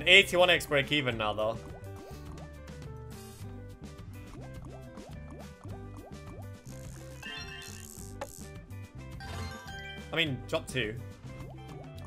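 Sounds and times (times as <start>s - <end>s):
looping game music: 0.0s - 12.0s.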